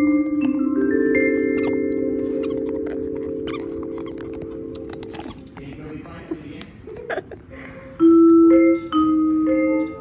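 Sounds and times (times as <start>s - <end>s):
vibraphone chord ringing: 0.0s - 5.1s.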